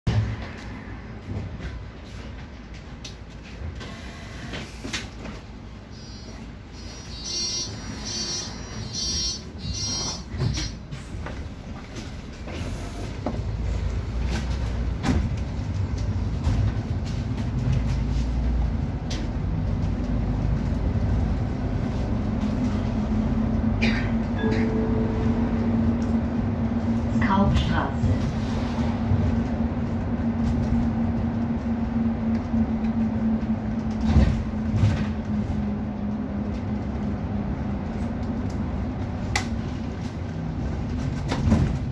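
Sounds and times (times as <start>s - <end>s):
bus engine and road rumble: 0.0s - 41.9s
door warning beeps: 7.1s - 10.7s
bus doors closing clicks: 9.6s - 13.6s, 23.8s - 26.4s.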